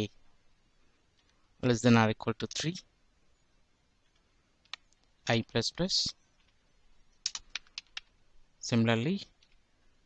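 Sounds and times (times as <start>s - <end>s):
computer keyboard typing: 7.2s - 8.1s.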